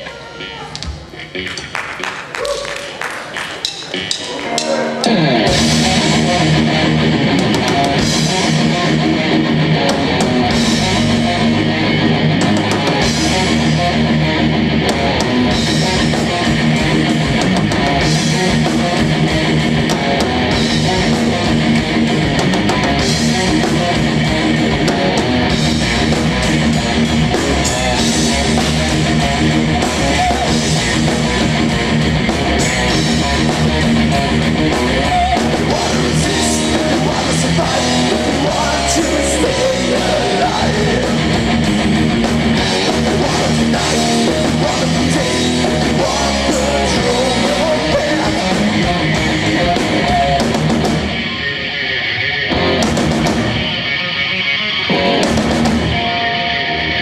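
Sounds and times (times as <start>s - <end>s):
rock band playing loudly: 0.0s - 57.0s.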